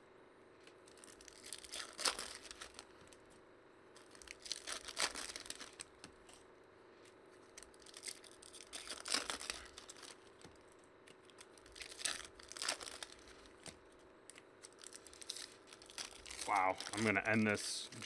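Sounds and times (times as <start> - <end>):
foil wrappers tearing and crinkling: 0.8 - 3.2, 4.0 - 6.4, 7.4 - 14.0, 14.6 - 18.0.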